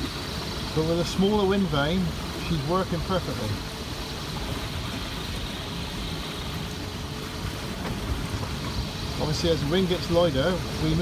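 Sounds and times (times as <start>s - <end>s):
water rushing past hull: 0.0s - 11.0s.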